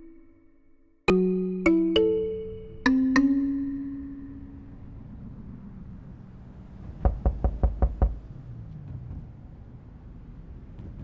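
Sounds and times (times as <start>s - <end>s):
rapid knocking on a door: 7.0s - 8.2s.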